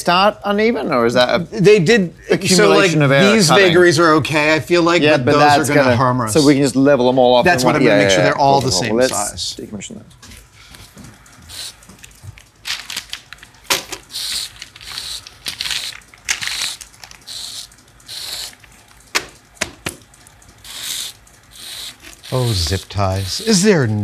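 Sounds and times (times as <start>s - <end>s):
zip ties ratcheting: 14.1s - 18.6s, 20.1s - 22.9s.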